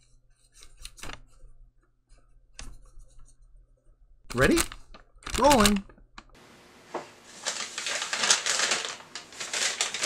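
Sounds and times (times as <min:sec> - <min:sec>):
paper bags rustling and crinkling: 0:06.8 - 0:10.0.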